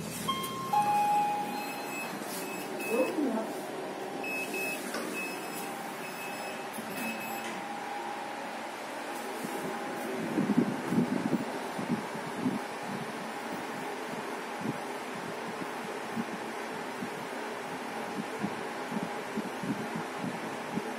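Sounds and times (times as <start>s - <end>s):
lift car humming: 0.0s - 14.1s
short high beeps: 0.2s - 3.2s, 4.2s - 7.6s.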